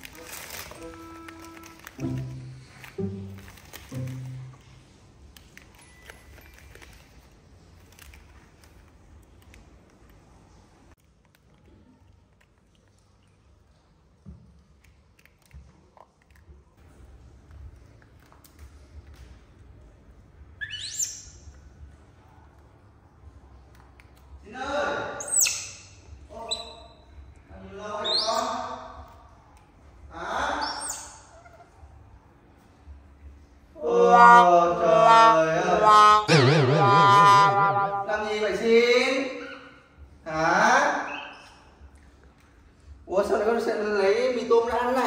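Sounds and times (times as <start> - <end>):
high-pitched animal call: 28.0 - 28.8, 30.4 - 31.8, 33.8 - 39.8.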